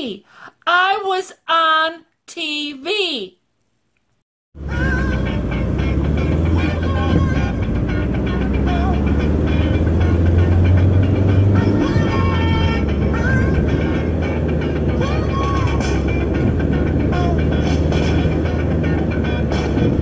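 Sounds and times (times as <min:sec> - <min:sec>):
car engine and road rumble: 0:04.6 - 0:20.0
music playing: 0:04.6 - 0:20.0.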